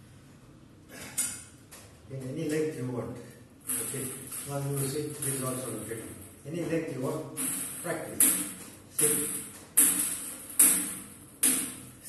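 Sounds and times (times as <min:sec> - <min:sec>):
table tennis bat hitting ball: 0:07.4 - 0:12.0.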